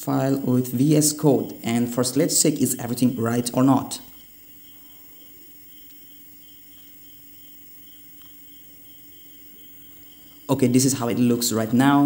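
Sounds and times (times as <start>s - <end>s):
high-pitched pulsing whine: 0.0s - 12.0s
low electrical hum: 0.0s - 12.0s.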